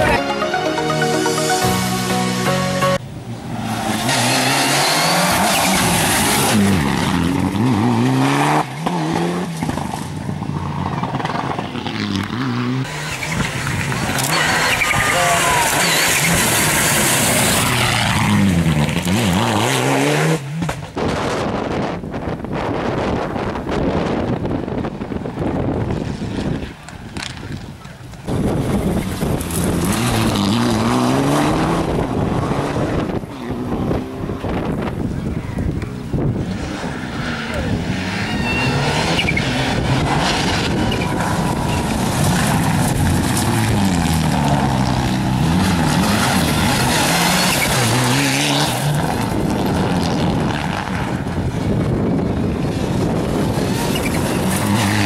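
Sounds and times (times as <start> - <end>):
rally cars passing at speed: 3.0 - 55.0.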